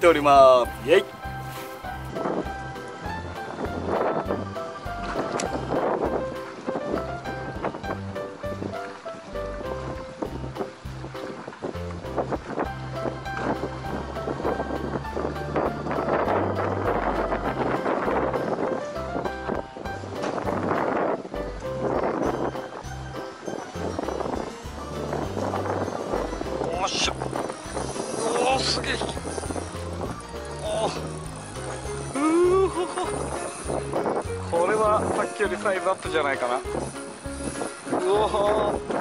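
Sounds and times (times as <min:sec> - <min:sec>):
water: 0:00.0 - 0:39.0
wind hiss: 0:00.0 - 0:39.0.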